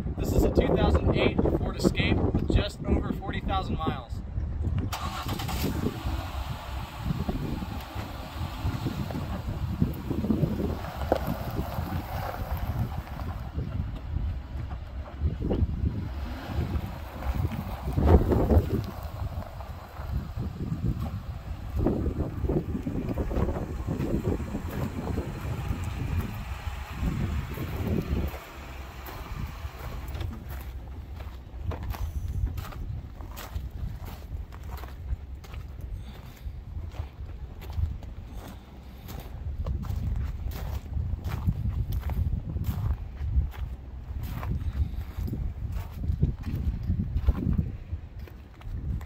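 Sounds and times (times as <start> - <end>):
wind buffeting microphone: 0.0 - 49.0
car engine idling: 5.0 - 39.8.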